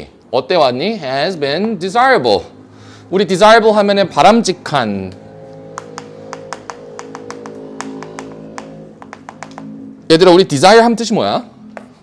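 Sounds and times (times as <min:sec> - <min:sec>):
soft background music: 0:00.0 - 0:12.0
chalk tapping on blackboard: 0:05.8 - 0:09.8.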